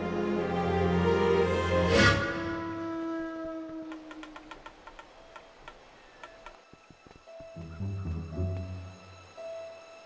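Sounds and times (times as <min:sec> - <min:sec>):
light ticking clicks: 0:03.9 - 0:07.3.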